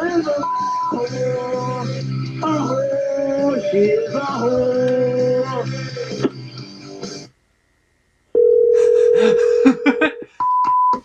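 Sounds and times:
music: 0:00.0 - 0:07.4
telephone line tone: 0:08.4 - 0:11.0.

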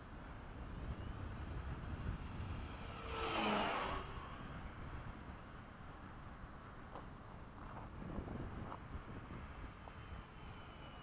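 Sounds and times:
model airplane motor whine passing: 0:00.9 - 0:05.1, 0:08.9 - 0:11.0.

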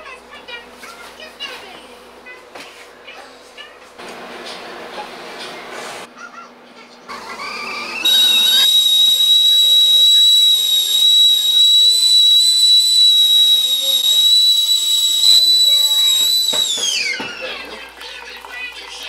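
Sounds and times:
stovetop kettle whistling: 0:07.3 - 0:17.6.

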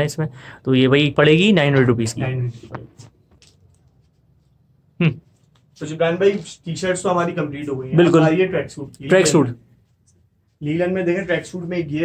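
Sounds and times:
man speaking: 0:00.0 - 0:03.0, 0:05.0 - 0:09.7, 0:10.5 - 0:12.0.

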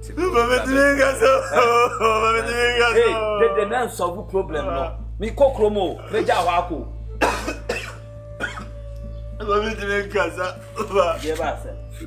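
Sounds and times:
background music: 0:00.0 - 0:12.0
man coughing: 0:07.2 - 0:08.8.

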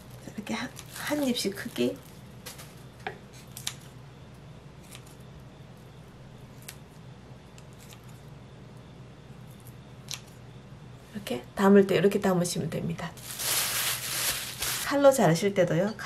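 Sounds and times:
scissors snipping rice cake: 0:04.8 - 0:05.2.

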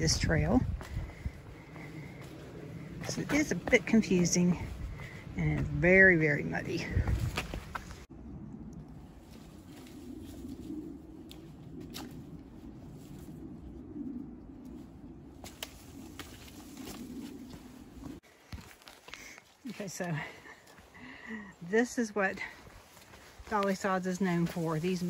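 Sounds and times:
footsteps on dirt trail: 0:00.0 - 0:08.1, 0:15.4 - 0:25.0.

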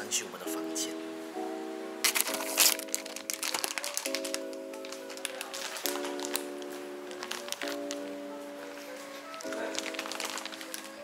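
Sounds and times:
background music sustained chords: 0:00.0 - 0:11.0.

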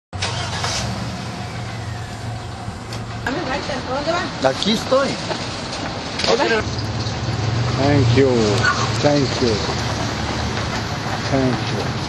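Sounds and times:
background noise: 0:00.2 - 0:12.0.

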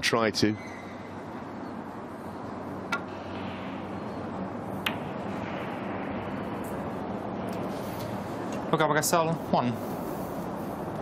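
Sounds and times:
cue tip striking ball: 0:04.8 - 0:06.0.

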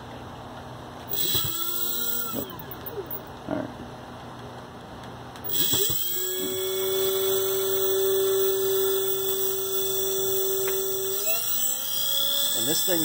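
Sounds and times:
electric motor whine: 0:01.1 - 0:03.2, 0:05.5 - 0:13.0.

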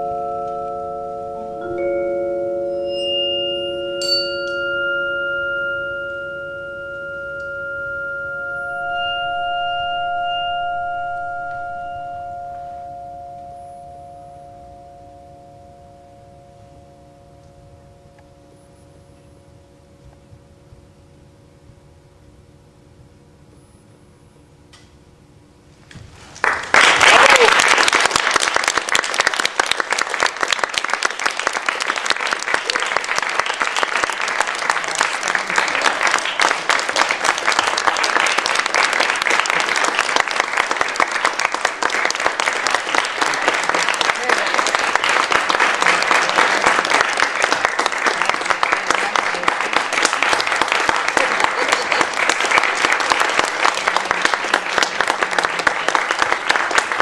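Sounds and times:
audience applauding: 0:26.4 - 0:57.0.

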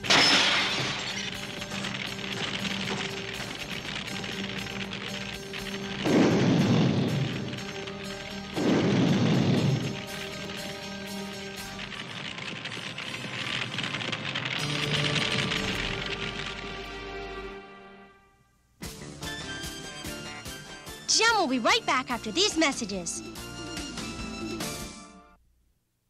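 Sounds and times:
fire bursts: 0:00.0 - 0:17.1
dramatic cartoon underscore: 0:13.8 - 0:25.1.

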